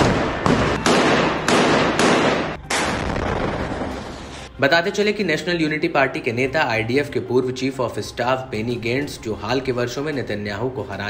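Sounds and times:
gunshots with echo: 0:00.0 - 0:03.9.

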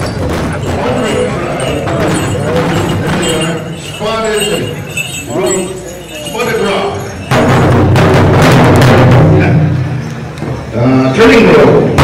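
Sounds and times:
big drum being beaten: 0:00.0 - 0:05.8, 0:07.2 - 0:10.0.

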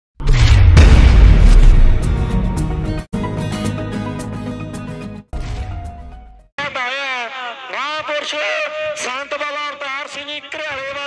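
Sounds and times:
deep booming impacts: 0:00.2 - 0:03.1
loud low rumble: 0:00.3 - 0:03.0
intro music: 0:00.8 - 0:06.5.

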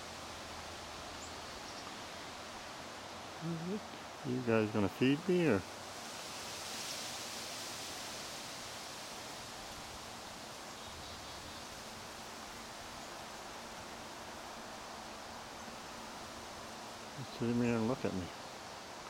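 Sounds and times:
outdoor background hiss: 0:00.0 - 0:19.0.

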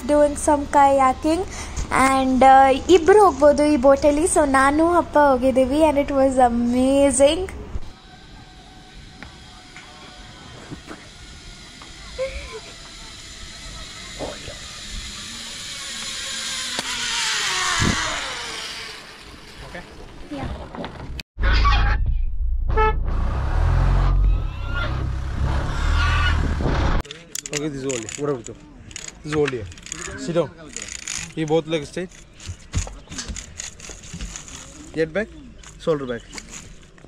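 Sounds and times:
zip-line trolley whirring on cable: 0:07.0 - 0:20.8, 0:24.2 - 0:27.0, 0:33.3 - 0:35.0
voices: 0:11.8 - 0:16.4.

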